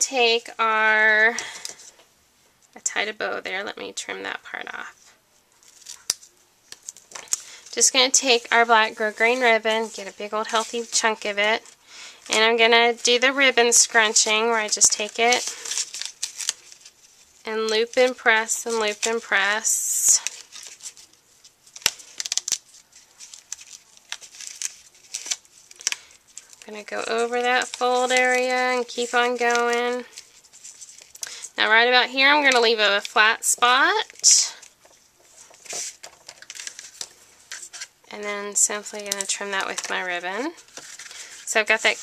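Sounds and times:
paper and ribbon rustling: 0.1 - 2.0, 5.5 - 42.0.

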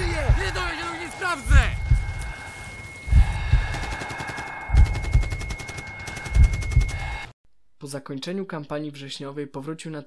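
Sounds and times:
high-pitched ringing tone: 0.0 - 7.3.

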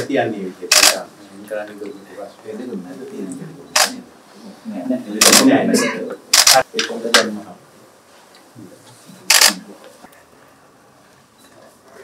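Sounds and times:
camera shutter burst: 0.7 - 1.0, 3.8 - 4.0, 5.2 - 5.5, 6.3 - 6.6, 9.3 - 9.6.

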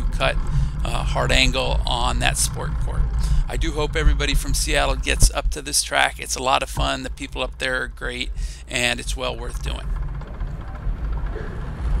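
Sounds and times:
wind rumble on microphone: 0.0 - 12.0
bicycle rolling on wooden boards: 0.2 - 12.0.

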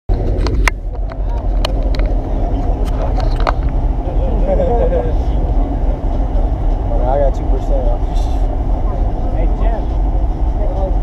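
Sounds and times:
steady low rumble: 0.1 - 11.0
voices talking: 0.9 - 11.0.

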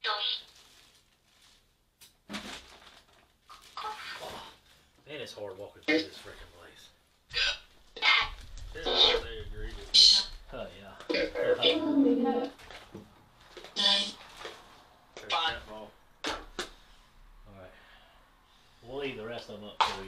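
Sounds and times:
person's voice in short bursts: 11.1 - 12.5.

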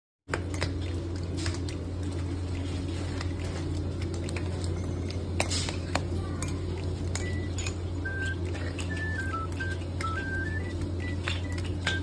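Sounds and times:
steady low hum: 0.3 - 12.0
high beeping tune: 7.2 - 12.0.

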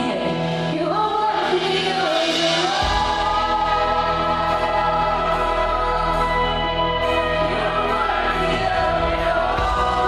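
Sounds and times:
women singing into microphones: 0.0 - 10.0
deep bass: 2.8 - 10.0.

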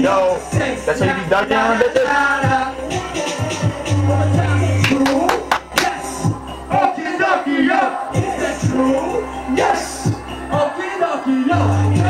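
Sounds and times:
hip-hop beat bass: 0.0 - 12.0
rappers shouting: 0.0 - 12.0
crowd shouting along: 0.1 - 12.0.

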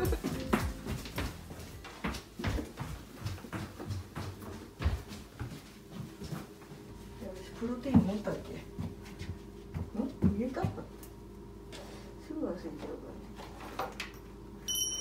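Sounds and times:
footsteps and small knocks: 0.0 - 12.1.

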